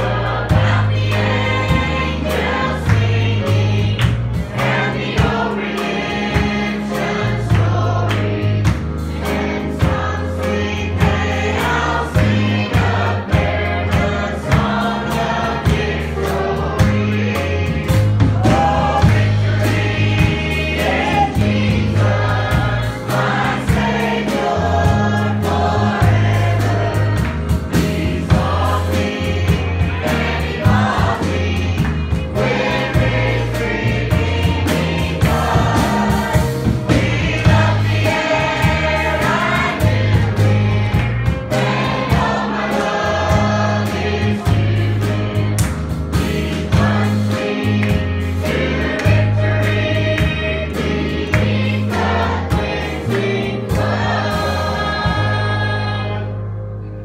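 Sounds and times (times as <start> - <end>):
drum kit beat: 0.0 - 56.0
electric bass notes: 0.0 - 57.0.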